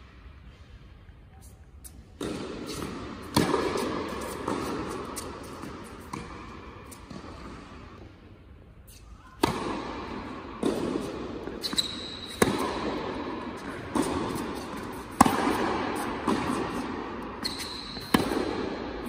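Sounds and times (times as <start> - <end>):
tennis ball struck by racket: 2.2 - 7.7, 9.4 - 19.0
tennis ball bouncing on hard court: 2.2 - 8.0, 9.4 - 19.0
shoe squeaks: 11.6 - 12.4, 17.4 - 18.2.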